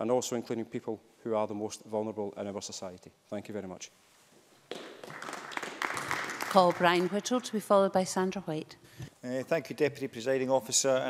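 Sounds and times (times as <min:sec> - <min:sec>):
applause: 0:04.7 - 0:07.6.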